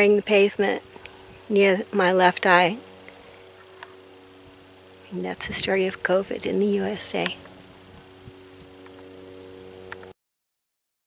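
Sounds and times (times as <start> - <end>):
steady low hum: 0.0 - 10.2
faint clicks: 3.0 - 4.0.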